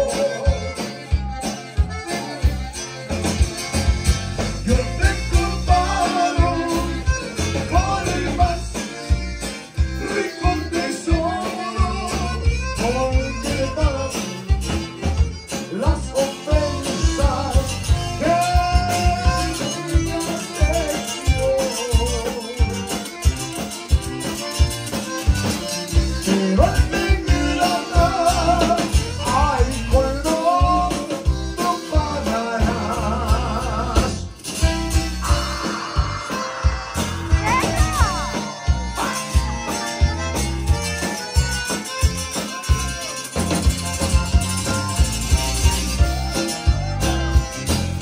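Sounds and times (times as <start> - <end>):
accordion melody: 0.0 - 48.0
electric bass and guitar: 0.0 - 48.0.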